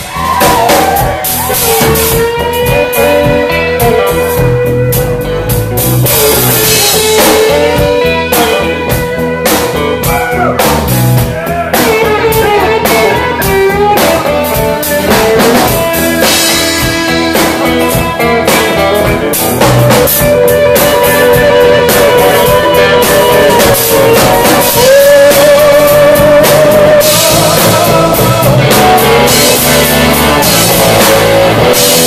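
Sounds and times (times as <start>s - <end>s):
drum kit: 0.0s - 32.0s
electric guitar lead with bends: 0.0s - 32.0s.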